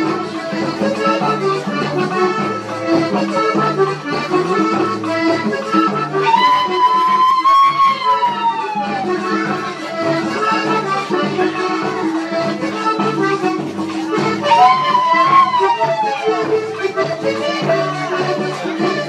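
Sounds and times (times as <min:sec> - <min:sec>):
accordion-led folk music: 0:00.0 - 0:19.0
long high held note: 0:14.4 - 0:16.3.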